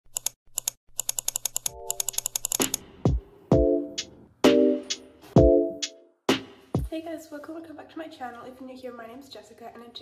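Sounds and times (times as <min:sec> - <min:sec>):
keyboard typing clicks: 0:00.1 - 0:02.8.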